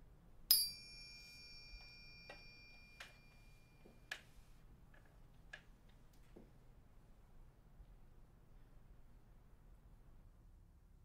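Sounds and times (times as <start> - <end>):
tableware ringing: 0.5 - 4.1
faint knocks and clicks: 1.8 - 6.6.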